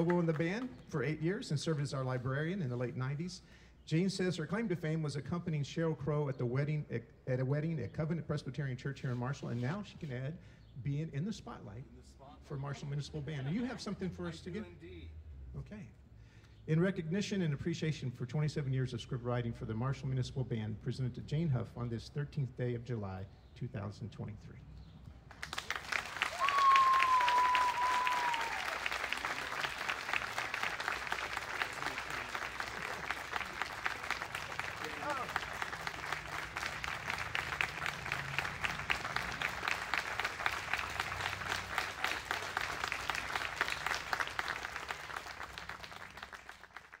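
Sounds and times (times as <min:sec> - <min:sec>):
audience applauding: 0:00.0 - 0:00.8, 0:25.3 - 0:47.0
long high whistle: 0:26.4 - 0:28.8.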